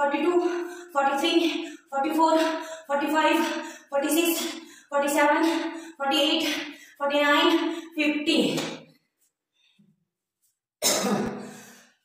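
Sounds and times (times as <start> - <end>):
woman clearing her throat: 10.8 - 11.6.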